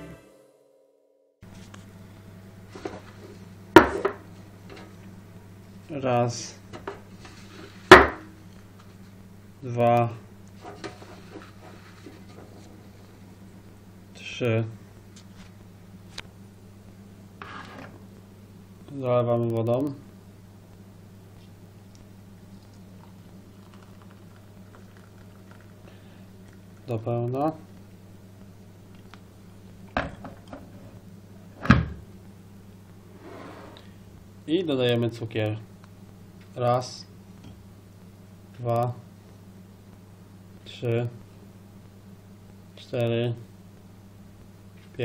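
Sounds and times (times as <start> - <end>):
low electrical hum: 1.4 - 45.0
sharp knock on hard object: 7.9 - 8.3.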